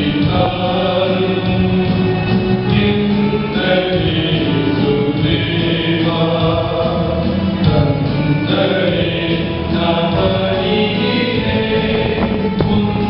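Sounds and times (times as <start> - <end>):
church choir singing a hymn: 0.0 - 13.0.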